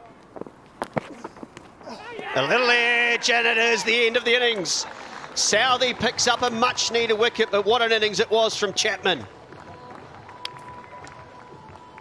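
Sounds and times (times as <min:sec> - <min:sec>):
open-air ambience: 0:00.0 - 0:12.0.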